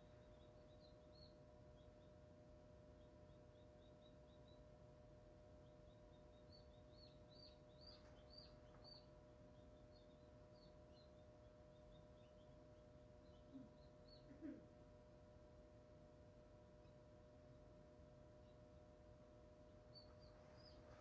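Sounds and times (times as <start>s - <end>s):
incubator fan hum: 0.0s - 21.0s
chick peeping: 5.6s - 14.7s, 19.7s - 21.0s.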